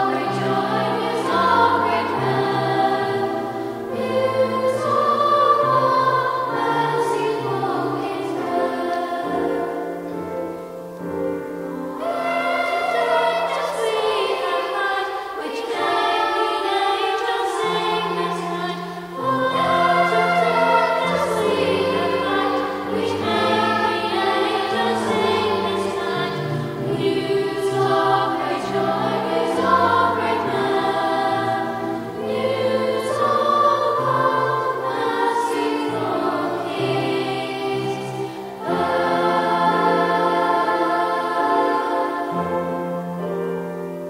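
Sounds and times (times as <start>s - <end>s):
choir singing a carol: 0.0s - 44.0s
grand piano accompaniment: 0.0s - 44.0s.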